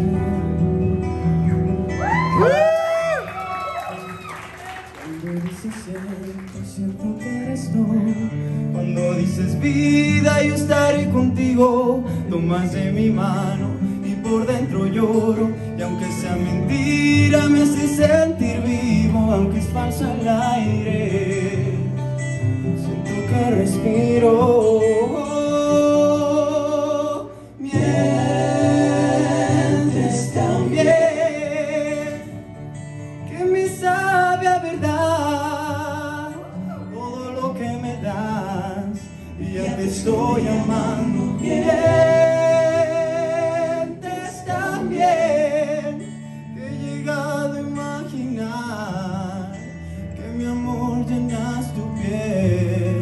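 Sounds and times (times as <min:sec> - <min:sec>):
young man singing pop ballad: 0:05.0 - 0:22.0, 0:22.8 - 0:28.3, 0:33.3 - 0:53.0.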